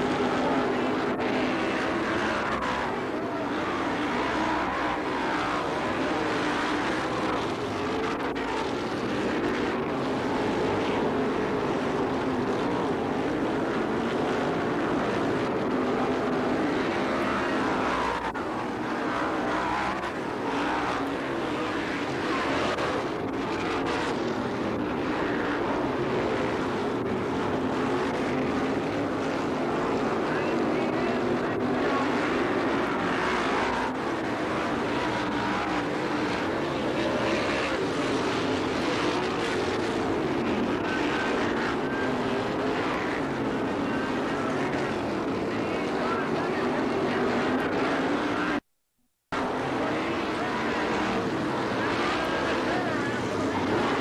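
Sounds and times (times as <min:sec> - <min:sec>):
race car engines roaring: 0:00.0 - 0:48.7, 0:49.3 - 0:54.0.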